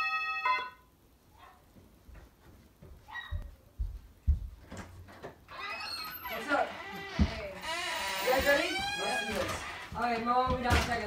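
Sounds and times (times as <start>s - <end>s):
door thumps: 7.1s - 11.0s.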